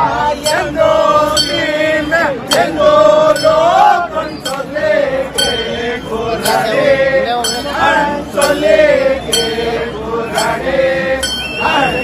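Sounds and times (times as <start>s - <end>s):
group of voices chanting: 0.0s - 12.0s.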